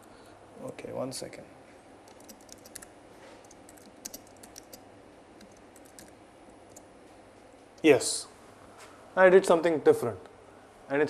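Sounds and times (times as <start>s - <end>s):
typing on computer keyboard: 2.1s - 4.8s, 5.4s - 6.9s.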